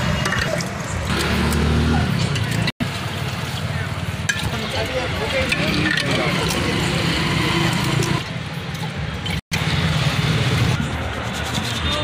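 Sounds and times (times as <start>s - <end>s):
vehicle engines passing: 0.0s - 12.0s.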